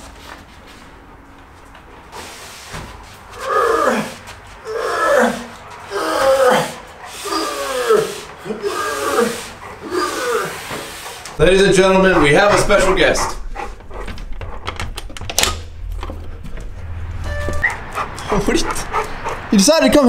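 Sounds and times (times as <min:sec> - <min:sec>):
dog howling: 0:03.4 - 0:14.0.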